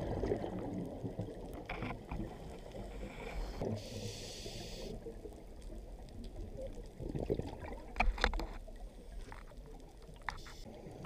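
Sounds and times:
underwater bubbles gurgling: 0.0 - 11.0.

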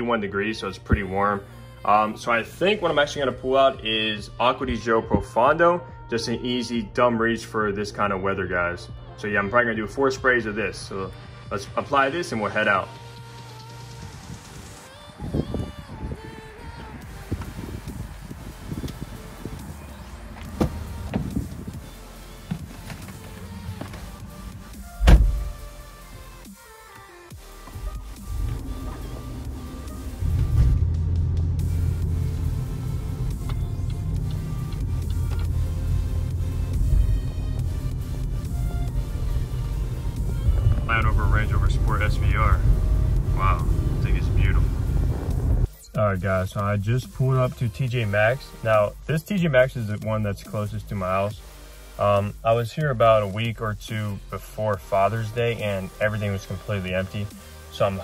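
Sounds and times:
background music: 0.0 - 58.0
car engine running: 17.3 - 26.4, 27.3 - 45.7
car door thunk: 20.4 - 21.7, 22.5 - 24.3, 24.9 - 25.6.

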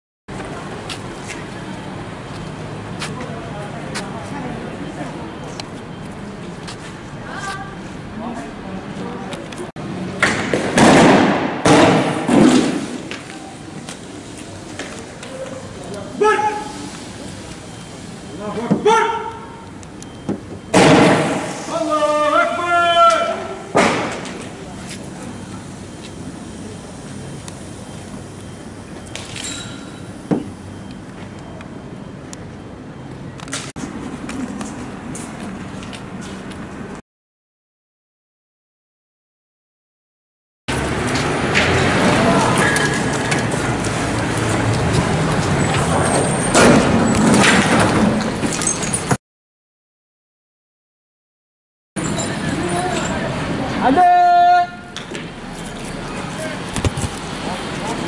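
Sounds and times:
police vehicles running: 0.3 - 37.0, 40.7 - 49.2, 52.0 - 54.0, 54.7 - 58.0
tear gas rounds firing bangs: 10.6 - 12.9, 20.7 - 21.6
man shouting: 16.2 - 16.7, 18.8 - 19.6, 21.7 - 23.6, 53.8 - 54.9
indistinct voices: 41.4 - 46.2, 52.0 - 58.0.

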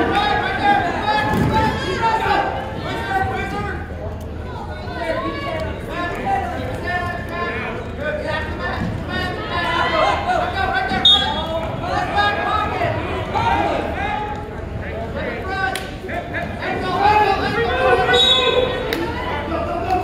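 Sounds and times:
crowd talking and calling out: 0.0 - 20.0.

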